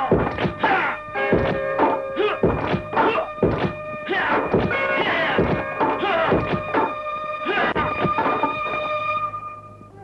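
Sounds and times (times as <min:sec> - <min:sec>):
film music: 0:00.0 - 0:10.0.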